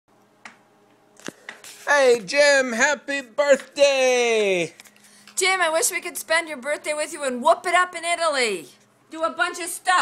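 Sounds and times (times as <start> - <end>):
faint steady hum: 0.1 - 10.0.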